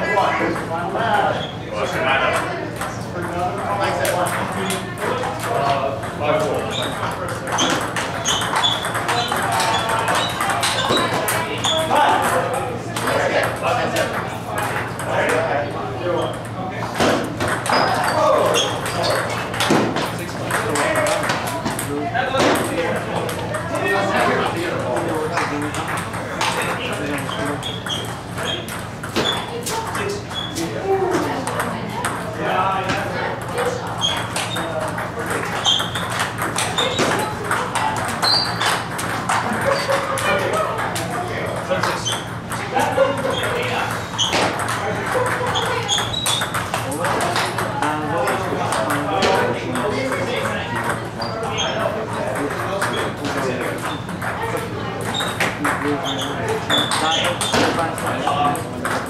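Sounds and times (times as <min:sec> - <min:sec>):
indistinct chatter: 0:00.0 - 0:59.0
table tennis balls clicking: 0:02.0 - 0:59.0.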